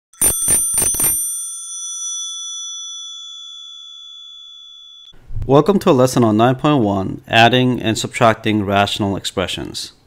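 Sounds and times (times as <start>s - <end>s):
small metal bell ringing: 0.2s - 5.2s.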